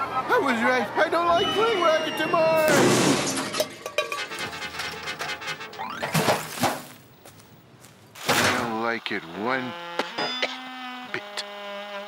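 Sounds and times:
crash into trash can: 0:02.7 - 0:05.2, 0:06.0 - 0:06.9, 0:08.2 - 0:08.7.

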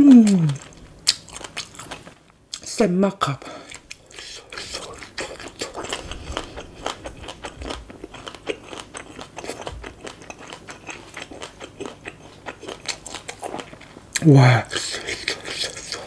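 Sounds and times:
crunchy chewing: 0:00.0 - 0:02.7, 0:03.5 - 0:16.0.

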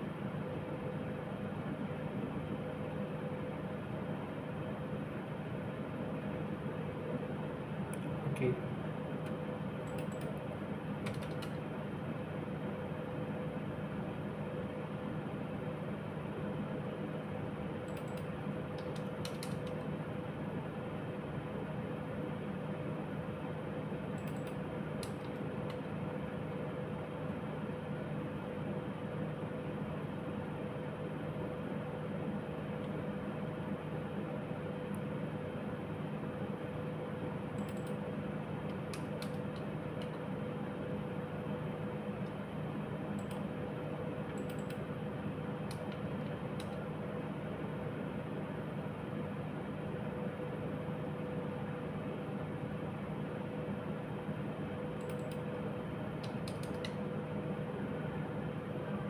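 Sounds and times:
electrical hum and hiss: 0:00.0 - 0:59.0
keyboard and mouse clicks: 0:09.2 - 0:10.4, 0:11.0 - 0:11.6, 0:17.9 - 0:19.8, 0:24.2 - 0:25.8, 0:37.6 - 0:38.0, 0:38.7 - 0:40.2, 0:44.3 - 0:44.8, 0:45.7 - 0:46.8, 0:55.0 - 0:55.4, 0:56.2 - 0:57.0.

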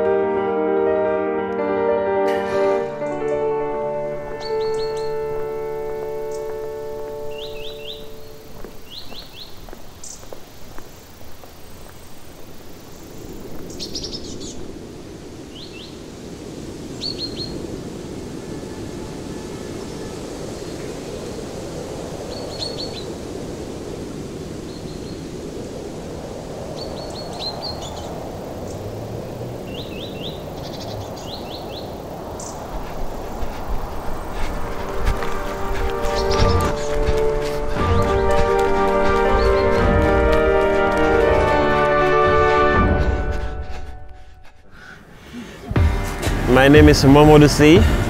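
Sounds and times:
small birds chirping: 0:04.2 - 0:14.8, 0:22.3 - 0:23.2, 0:26.8 - 0:41.2.

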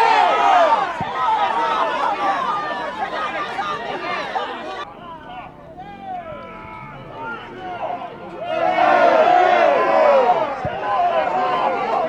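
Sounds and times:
people shouting: 0:00.0 - 0:12.0.

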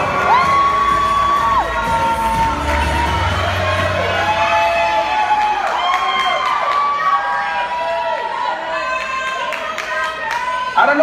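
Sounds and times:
audience cheering and screaming: 0:00.0 - 0:11.0.

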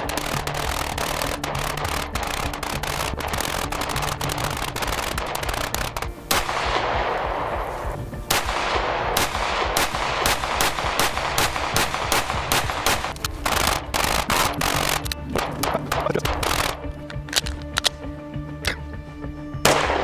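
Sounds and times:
pistol shots: 0:00.0 - 0:16.8, 0:19.6 - 0:20.0
background music: 0:00.0 - 0:20.0.

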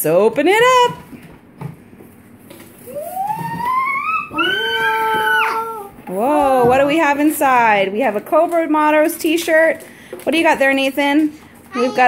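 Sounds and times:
child's drawn-out excited ooh: 0:02.9 - 0:06.0.

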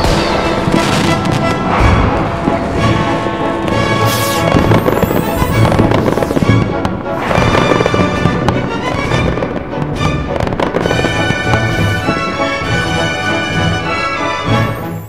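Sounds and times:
fireworks bursts and crackle: 0:00.0 - 0:15.0
music with sustained chords: 0:00.0 - 0:15.0
sharp hiss: 0:04.0 - 0:06.6.

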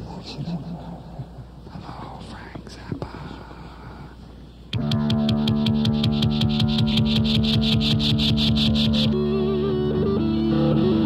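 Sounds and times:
faint whispered voice: 0:00.0 - 0:04.2
sharp click: 0:04.7 - 0:09.2.

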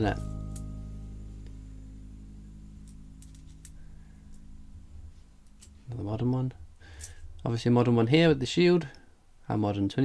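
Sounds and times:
low steady hum: 0:00.0 - 0:09.9.

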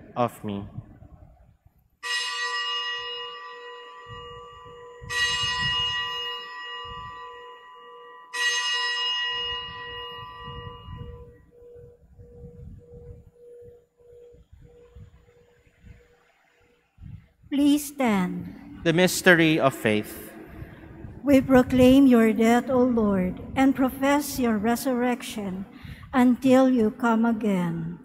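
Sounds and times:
altar bell ringing: 0:02.0 - 0:14.9.

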